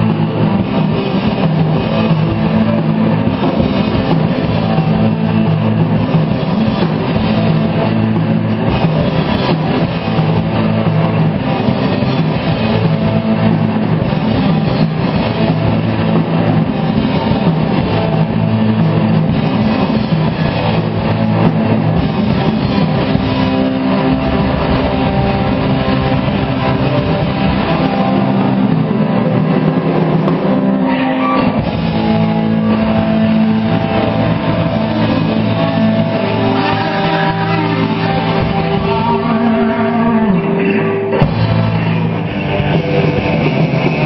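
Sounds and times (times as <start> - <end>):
distorted electric guitars: 0.0 - 44.0
drum kit: 0.0 - 44.0
electric bass: 0.0 - 44.0.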